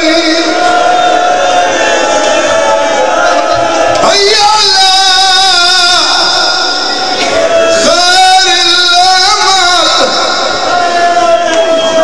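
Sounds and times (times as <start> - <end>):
man chanting through a microphone: 0.0 - 1.2, 4.0 - 12.0.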